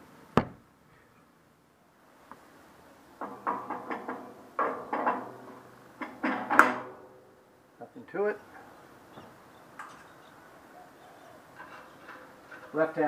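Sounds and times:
metal wheel knocks and clunks: 3.2 - 7.4.

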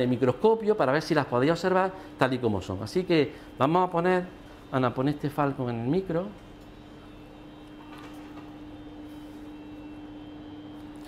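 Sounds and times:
laboratory equipment humming: 0.0 - 11.0.

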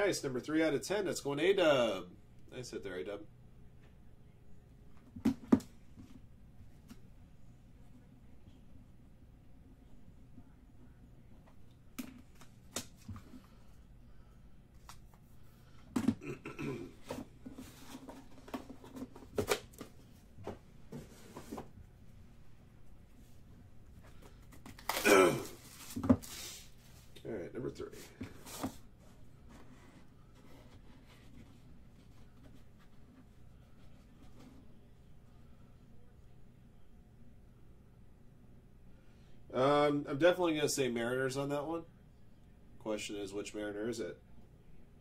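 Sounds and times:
cardboard sliding rustle: 28.0 - 28.8.

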